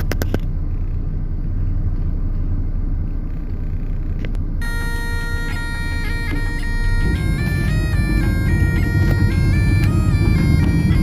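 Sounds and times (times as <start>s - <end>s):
car engine and tyres rumbling: 0.0s - 11.0s
music with pipe-like tones: 4.6s - 11.0s.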